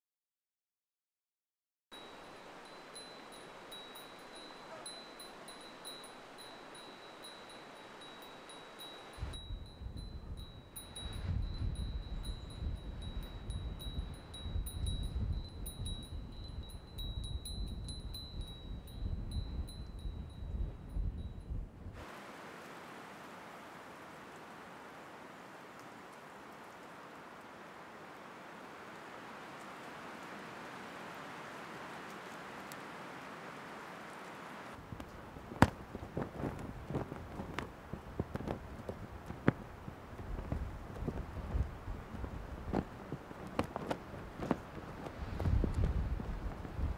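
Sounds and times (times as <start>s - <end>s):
wind chime ringing: 2.0s - 21.5s
low rumbling gusts: 9.2s - 22.0s, 34.8s - 46.9s.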